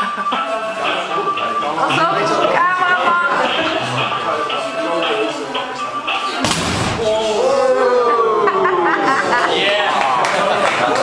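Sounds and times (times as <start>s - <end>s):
background music: 0.0s - 10.9s
voices: 0.0s - 11.0s
kick striking punch ball: 6.4s - 7.1s.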